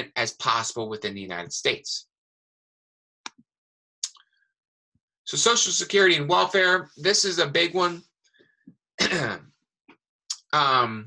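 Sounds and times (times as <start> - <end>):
man clearing throat: 9.0 - 9.4.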